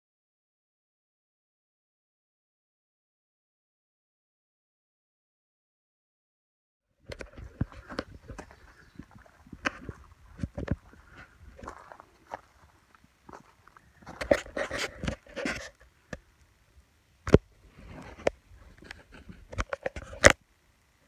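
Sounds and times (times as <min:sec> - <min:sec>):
footsteps on dirt and leaves: 0:07.1 - 0:15.8
leaves rustling: 0:07.1 - 0:20.4.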